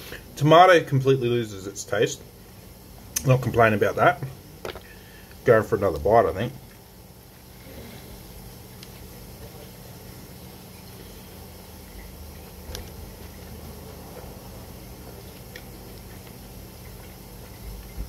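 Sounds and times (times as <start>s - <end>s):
steady low hum: 0.0s - 18.0s
man chewing food: 6.6s - 18.0s.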